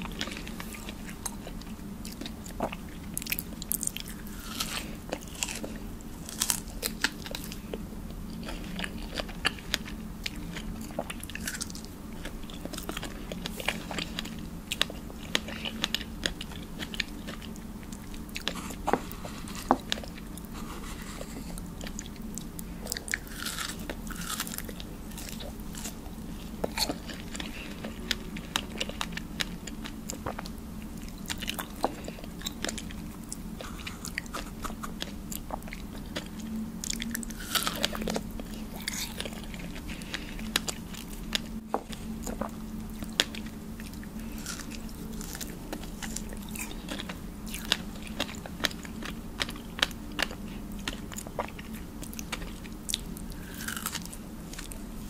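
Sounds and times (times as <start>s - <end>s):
wet chewing: 0.0s - 54.9s.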